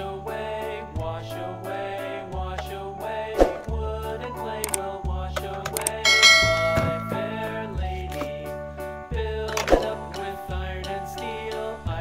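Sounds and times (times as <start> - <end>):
children's background music: 0.0 - 12.0
bright bell chime: 6.1 - 7.7.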